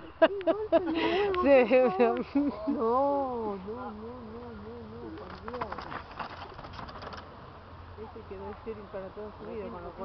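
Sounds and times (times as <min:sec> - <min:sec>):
mountain bike rattling past: 0:05.2 - 0:07.5.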